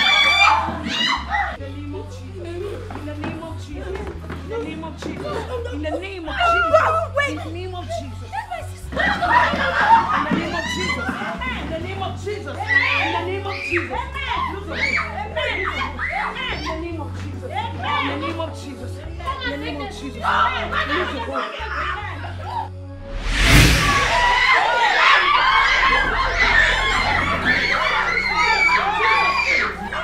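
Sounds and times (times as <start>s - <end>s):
high-pitched voices screaming: 0.0s - 1.6s, 23.8s - 30.0s
wavering wordless human cries: 0.0s - 22.8s, 25.0s - 30.0s
low droning background music: 0.1s - 30.0s
low drone in music: 25.1s - 30.0s.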